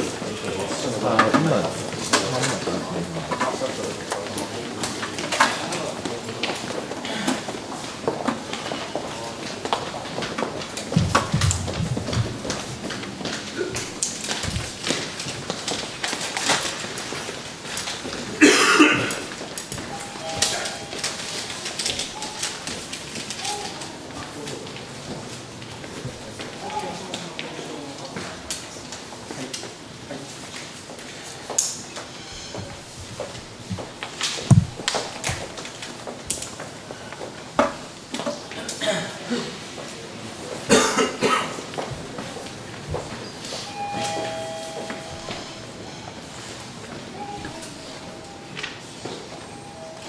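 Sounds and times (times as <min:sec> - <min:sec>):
person coughing: 0:18.4 - 0:19.3, 0:38.6 - 0:39.6, 0:40.7 - 0:41.6.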